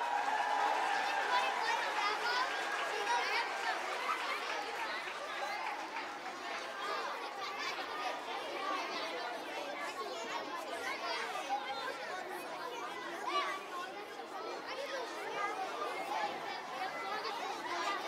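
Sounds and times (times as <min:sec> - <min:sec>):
chatter of many voices: 0:00.0 - 0:18.0.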